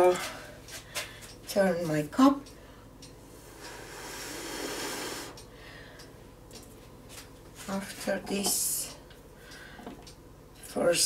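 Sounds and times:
breath blown through pursed lips: 3.4 - 5.4.

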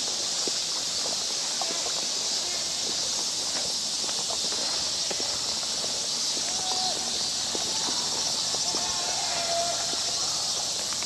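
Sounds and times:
footsteps on dirt path: 0.0 - 11.0
high-pitched outdoor hiss: 0.0 - 11.0.

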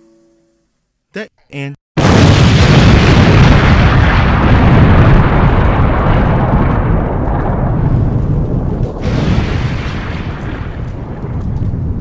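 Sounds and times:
loud deep rumbling: 2.0 - 12.0.

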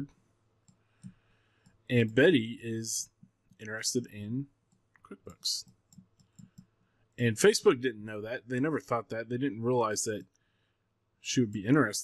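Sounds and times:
speech: 1.9 - 4.5, 5.1 - 5.7, 7.2 - 10.3, 11.2 - 12.0.

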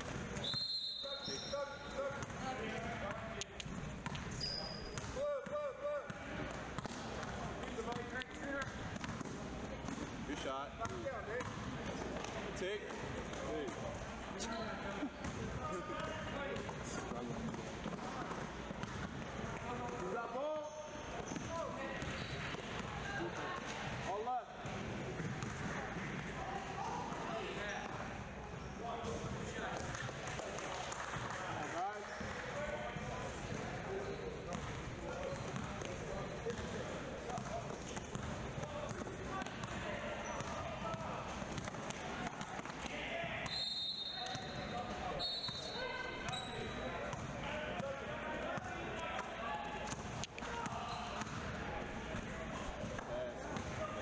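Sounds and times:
people talking: 4.4 - 18.5, 28.7 - 54.0.

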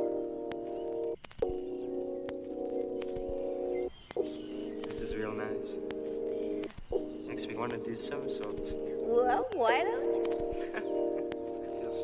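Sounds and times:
sustained music chords: 0.0 - 12.0
faint sharp clicks: 0.4 - 3.3, 4.0 - 8.8, 9.5 - 11.5.

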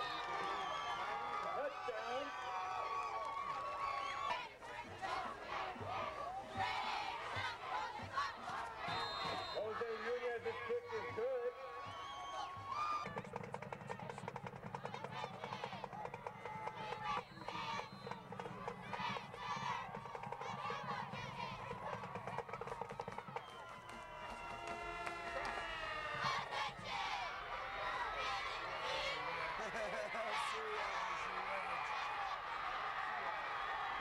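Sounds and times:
crowd noise: 0.0 - 34.0.

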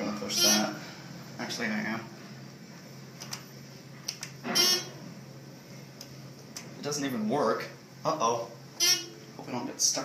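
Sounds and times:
short alarm buzzing tone: 0.3 - 0.8, 4.4 - 5.0, 8.8 - 9.2.

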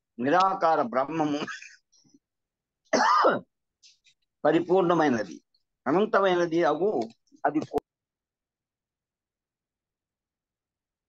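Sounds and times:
man clearing his throat: 1.2 - 1.8, 2.9 - 3.5.

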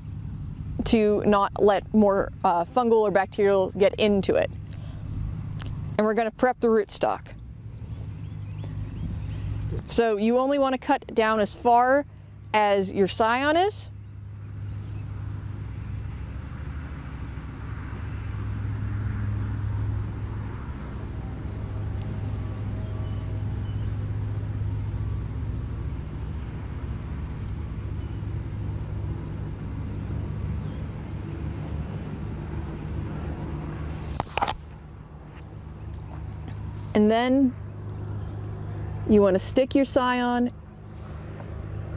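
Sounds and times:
low engine hum: 0.0 - 41.9.

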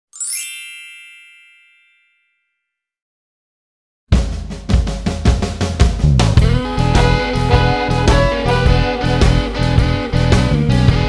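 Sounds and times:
bright chime ding: 0.2 - 2.6.

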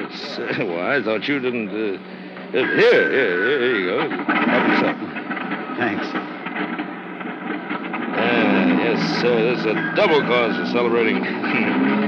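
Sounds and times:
steady low hum: 0.0 - 12.0
man's wavering voice: 2.6 - 4.9.

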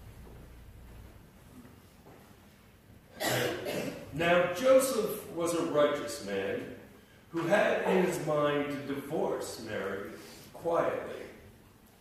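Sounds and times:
person coughing: 3.1 - 4.1.

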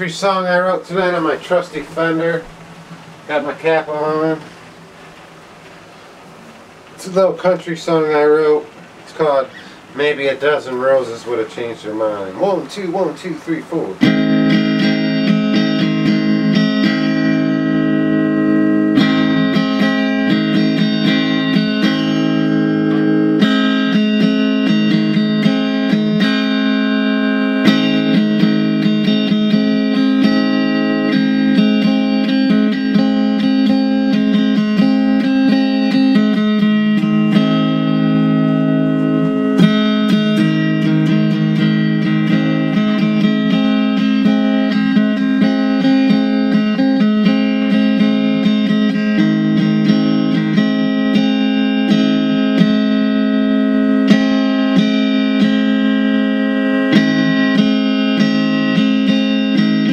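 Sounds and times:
electric guitar country tune: 0.0 - 59.9.

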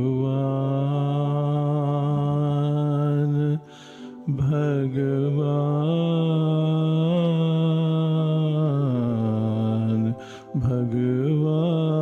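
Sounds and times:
man chanting: 0.0 - 12.0.

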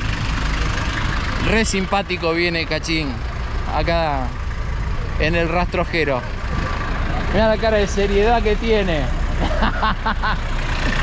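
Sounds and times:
pickup engine rumbling past: 0.0 - 11.0.

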